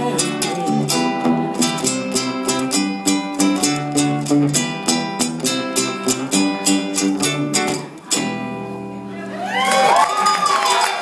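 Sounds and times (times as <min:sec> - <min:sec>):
audience cheering and clapping: 0:09.1 - 0:11.0
person whooping: 0:09.1 - 0:11.0.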